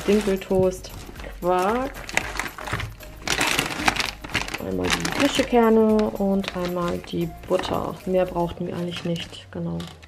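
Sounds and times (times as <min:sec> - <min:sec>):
containers knocking together: 0:00.0 - 0:10.0
packaging and bag rustling: 0:00.0 - 0:10.0.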